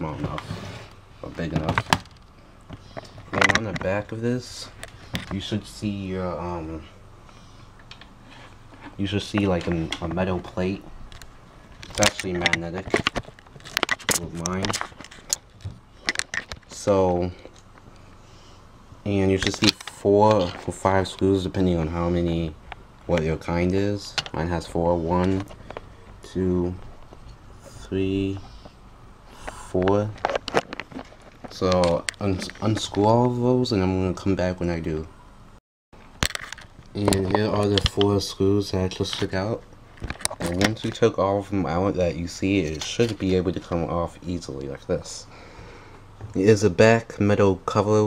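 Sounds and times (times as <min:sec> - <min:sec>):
person speaking: 0:00.0 - 0:02.0, 0:02.9 - 0:07.0, 0:08.8 - 0:11.0, 0:11.8 - 0:15.4, 0:16.6 - 0:17.6, 0:19.0 - 0:30.5, 0:31.4 - 0:35.1, 0:36.9 - 0:39.6, 0:40.3 - 0:45.4
low room hiss: 0:00.0 - 0:48.0
handling clicks and knocks: 0:29.8 - 0:32.9.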